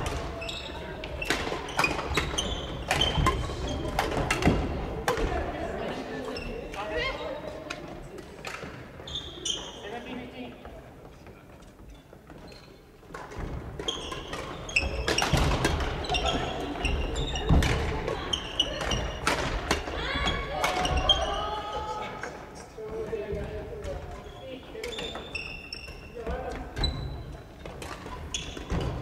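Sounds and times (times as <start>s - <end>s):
shoes squeaking on wooden floor: 0.0s - 4.7s, 8.6s - 29.0s
rackets striking shuttlecocks: 0.0s - 5.6s, 13.1s - 21.4s
players' voices echoing: 13.2s - 29.0s.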